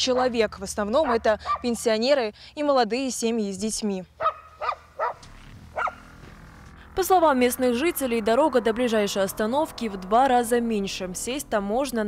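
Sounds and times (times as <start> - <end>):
dog barking: 1.0 - 1.7, 4.2 - 5.2, 5.8 - 6.0.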